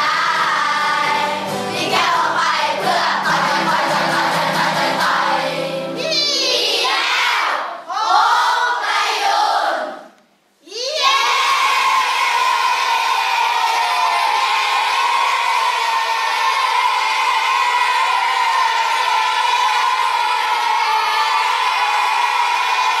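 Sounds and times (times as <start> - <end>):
children cheering and shouting: 0.0 - 9.9, 10.7 - 23.0.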